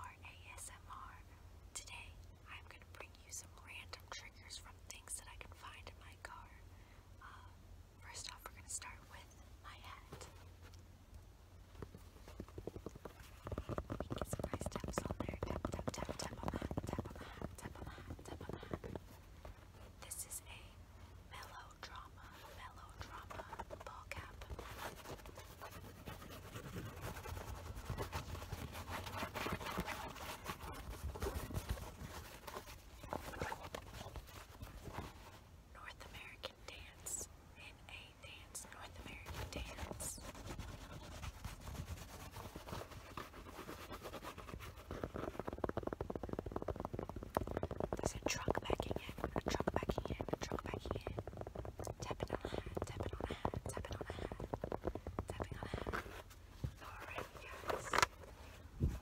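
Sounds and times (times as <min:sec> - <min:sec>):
soft close whispering: 0:00.0 - 0:10.8, 0:11.8 - 0:59.0
fingertips tapping on fabric cap: 0:11.7 - 0:20.3, 0:21.4 - 0:36.2, 0:38.3 - 0:59.0.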